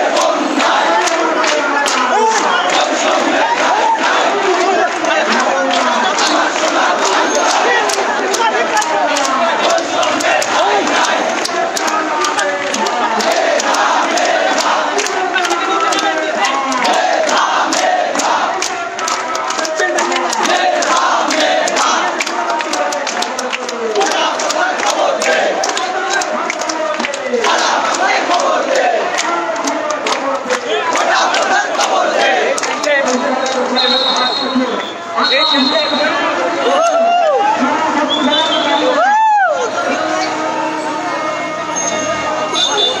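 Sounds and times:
crowd shouting slogans: 0.0s - 33.8s, 35.9s - 43.0s.

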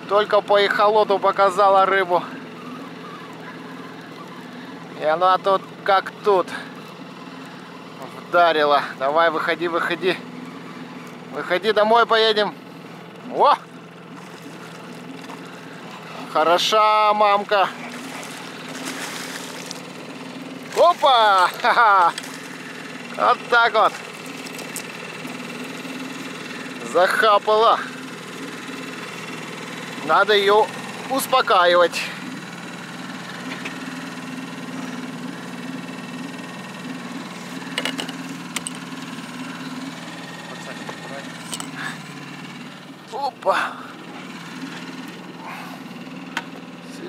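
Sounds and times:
outboard motor idling: 0.0s - 47.0s
fish thrashing water splashing: 14.1s - 15.5s, 17.7s - 20.0s.

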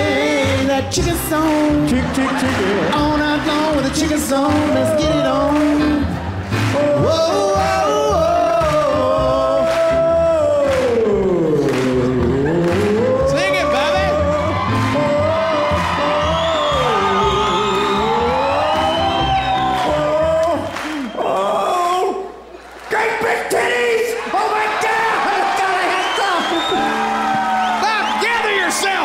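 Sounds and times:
piano: 0.0s - 21.0s
man singing: 0.0s - 22.2s.

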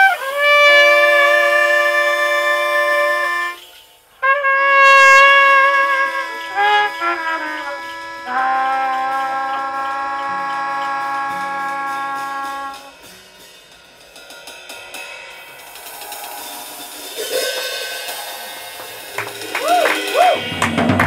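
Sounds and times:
trumpet and melodica long note: 0.0s - 13.1s
cymbals shimmering: 0.0s - 20.8s.

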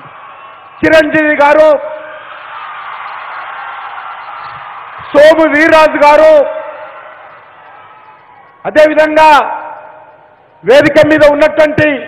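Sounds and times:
large venue background noise: 0.0s - 12.0s.

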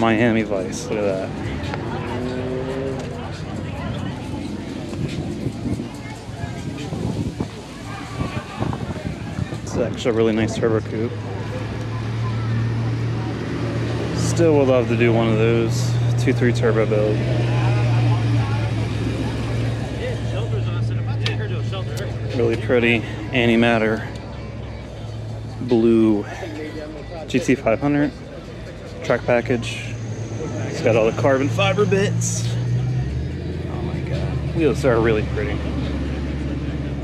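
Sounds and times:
faint chatter of voices: 0.0s - 37.0s
people talking: 0.0s - 37.0s.

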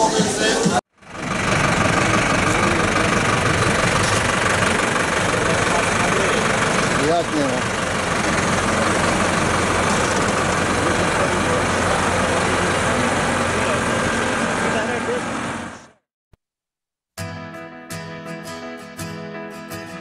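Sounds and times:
engine running: 0.0s - 16.0s.

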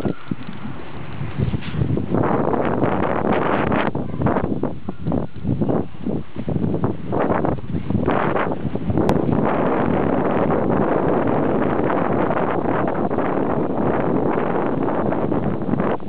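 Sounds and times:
sled runners rushing on snow: 0.0s - 3.8s
wind on microphone: 0.0s - 16.0s.

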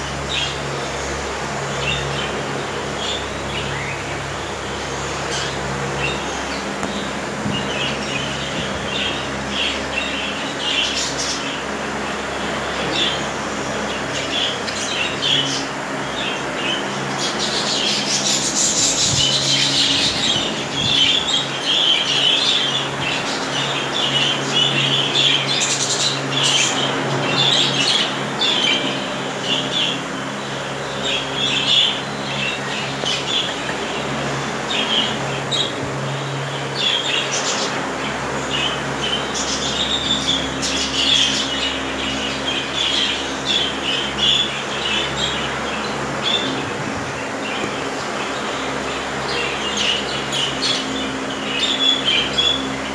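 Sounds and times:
steady low hum: 0.0s - 52.9s
budgerigars chirping: 13.9s - 34.1s, 38.5s - 46.6s, 47.4s - 52.7s.

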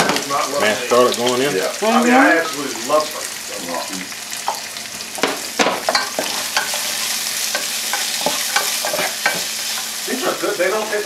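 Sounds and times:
vegetables sizzling in a pot: 0.0s - 11.0s
wooden spoon scraping a pot: 5.9s - 10.1s.

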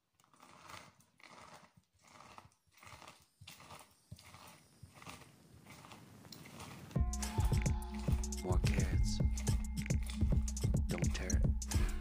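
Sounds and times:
juicer squelching and crunching: 0.0s - 12.0s.

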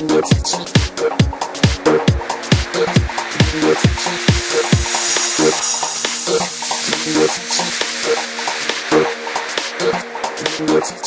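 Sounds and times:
steady bass tone: 0.0s - 11.0s.

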